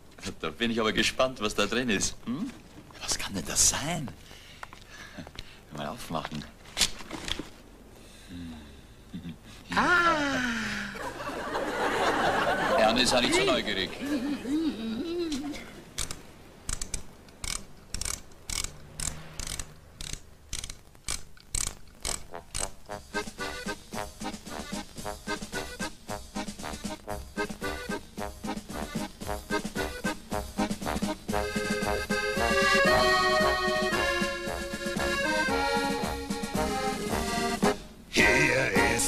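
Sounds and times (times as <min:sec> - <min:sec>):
music box winding clicks: 0:16.0 - 0:22.8
accordion music: 0:22.2 - 0:39.0.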